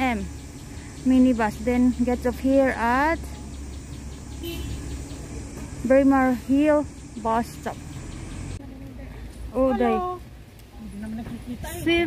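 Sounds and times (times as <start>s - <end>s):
buses moving: 0.0s - 12.0s
road traffic rumble: 0.0s - 12.0s.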